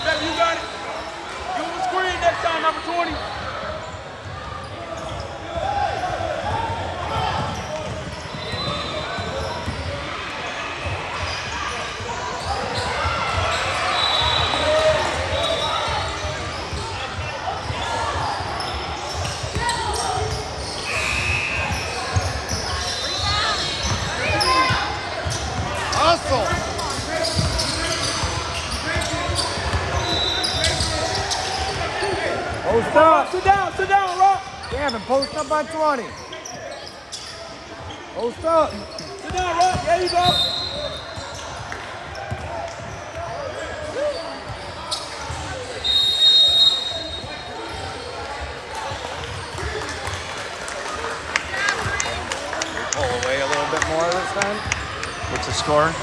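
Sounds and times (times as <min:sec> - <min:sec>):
echoing chatter of people: 0:00.0 - 0:56.0.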